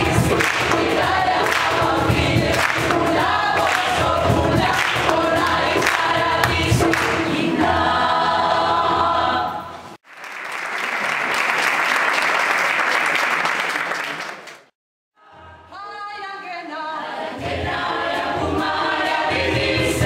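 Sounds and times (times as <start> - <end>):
choir singing: 0.0 - 10.0, 16.8 - 20.0
audience applauding: 0.1 - 1.9, 10.0 - 14.7.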